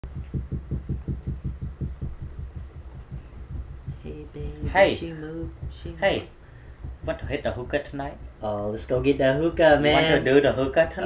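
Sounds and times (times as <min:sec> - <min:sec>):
rapid low thumps: 0:00.0 - 0:11.0.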